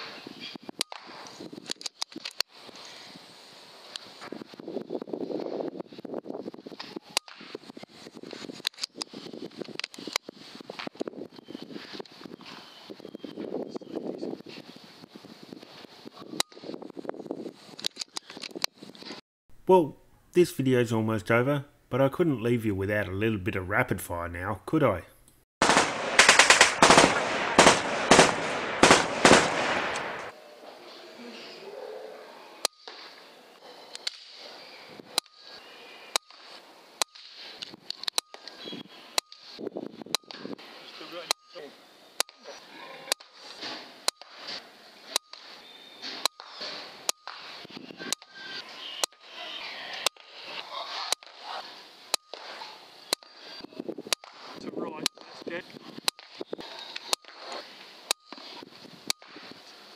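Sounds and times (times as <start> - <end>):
air rifle shots cracking: 25.6 - 30.3
machine-gun burst: 25.6 - 30.3.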